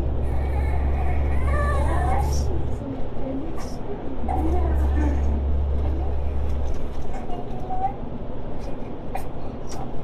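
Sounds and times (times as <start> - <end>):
road noise inside vehicle: 0.0 - 10.0
vehicle engine rumble: 0.0 - 10.0.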